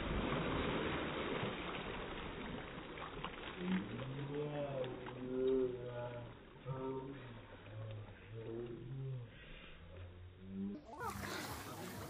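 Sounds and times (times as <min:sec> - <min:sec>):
pool splashing: 0:00.0 - 0:12.0
children's voices: 0:10.9 - 0:12.0.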